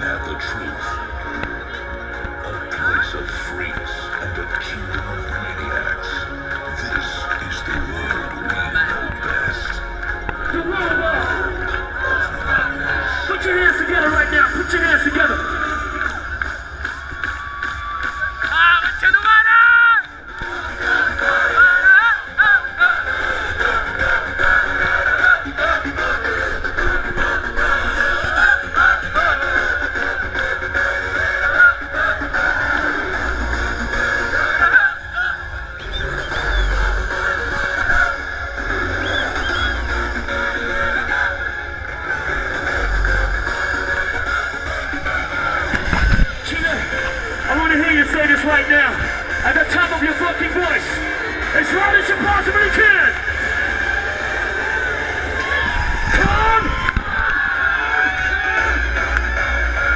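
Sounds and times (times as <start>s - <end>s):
loud electronic dance music: 0.0s - 59.9s.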